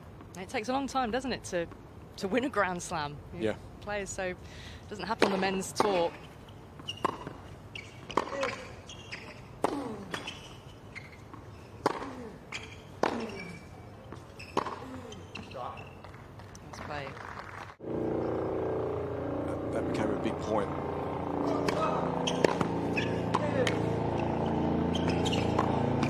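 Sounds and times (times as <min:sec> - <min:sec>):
tennis racket hitting ball: 0:07.0 - 0:07.4, 0:08.0 - 0:10.3, 0:11.8 - 0:12.3, 0:13.0 - 0:13.6, 0:21.4 - 0:26.0
tennis player grunting: 0:09.6 - 0:10.2, 0:11.9 - 0:13.8, 0:14.7 - 0:15.4.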